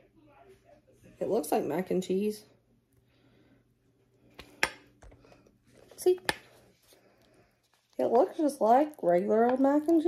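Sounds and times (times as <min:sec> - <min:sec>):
soft stirring of food: 0:02.6 - 0:10.0.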